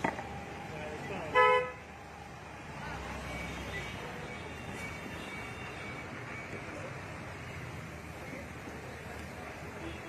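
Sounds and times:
vehicle horn honk: 1.3s - 1.8s.

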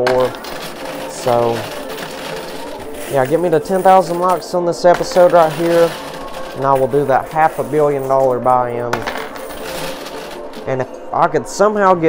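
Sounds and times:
coins clinking and sliding: 0.0s - 11.0s.

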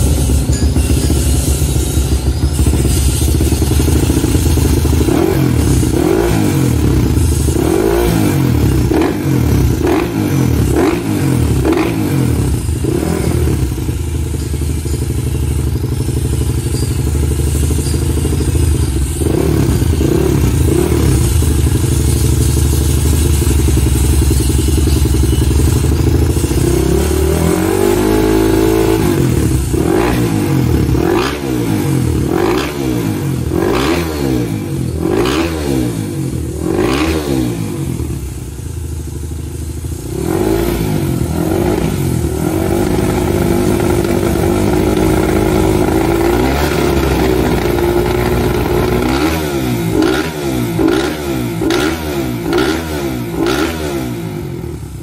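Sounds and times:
motorbike engine revving: 0.0s - 55.0s.

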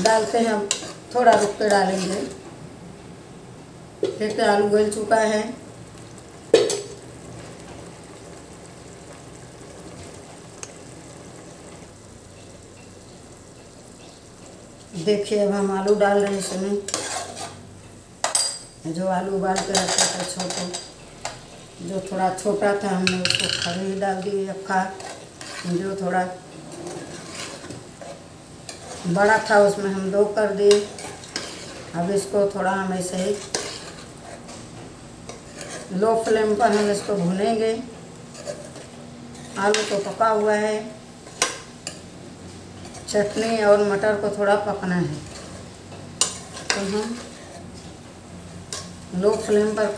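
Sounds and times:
metal spoon scraping pot: 0.0s - 2.4s, 16.2s - 17.6s, 25.0s - 25.8s, 26.5s - 29.1s, 33.2s - 34.4s, 35.3s - 36.0s, 46.2s - 47.6s
food sizzling in a pot: 0.0s - 49.9s.

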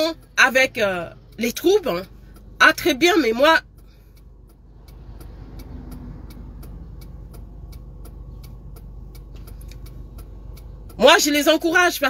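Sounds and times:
car turn signal ticking: 0.0s - 12.0s
low vehicle hum: 0.0s - 12.0s.

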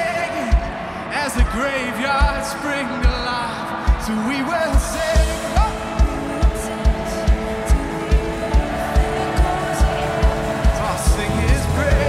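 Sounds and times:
kick drum beat: 1.4s - 12.0s
live band music: 4.8s - 12.0s.

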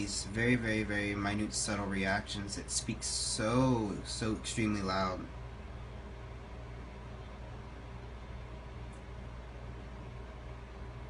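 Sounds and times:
faint hiss: 0.0s - 11.0s
low background hum: 0.0s - 11.0s.

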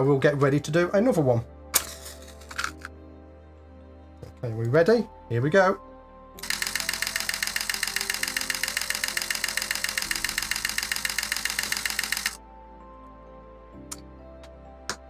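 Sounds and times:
camera shutter burst clicks: 6.4s - 12.4s.

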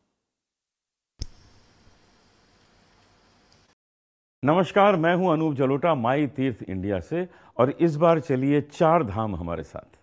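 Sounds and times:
sharp click: 1.2s - 1.6s
faint room hiss: 1.2s - 3.8s.

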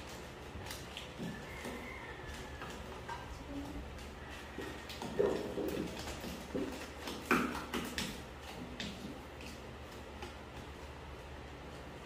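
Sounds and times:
wooden spoon stirring dough: 0.0s - 12.0s.

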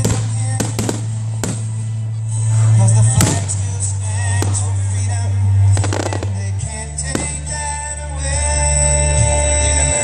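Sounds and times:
music with low bass: 0.0s - 10.0s
firework shells bursting: 5.8s - 7.6s.

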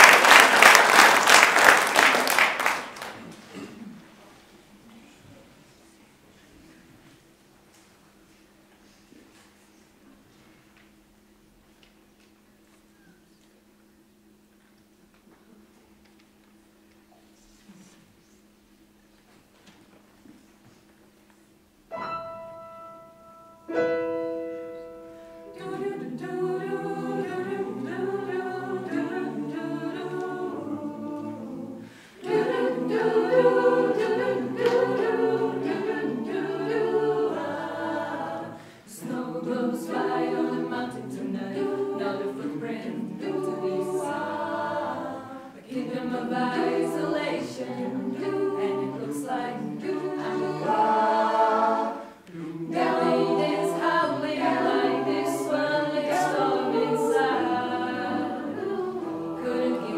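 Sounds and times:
choir singing a cappella: 23.7s - 59.9s.

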